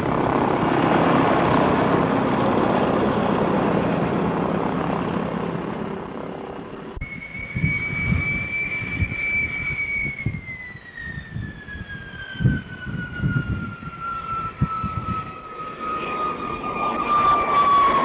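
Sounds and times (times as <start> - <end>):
jet engine whining: 0.0 - 18.0.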